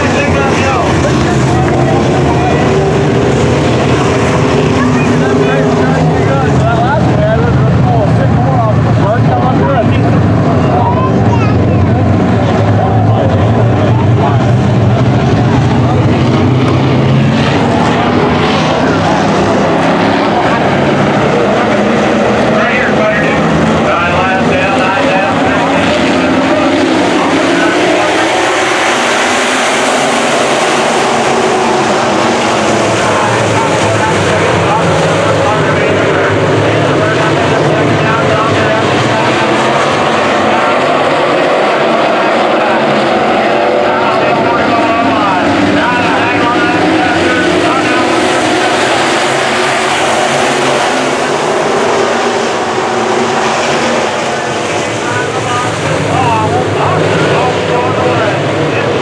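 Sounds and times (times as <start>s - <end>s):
race car engines revving: 0.0s - 59.0s.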